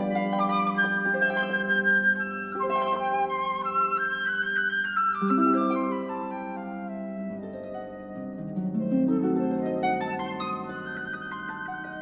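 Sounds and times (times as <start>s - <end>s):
instrumental classical music: 0.0s - 12.0s.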